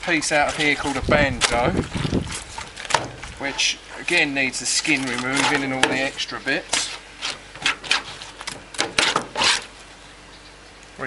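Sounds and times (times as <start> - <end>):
knife scraping fish on cutting board: 5.0 - 9.7.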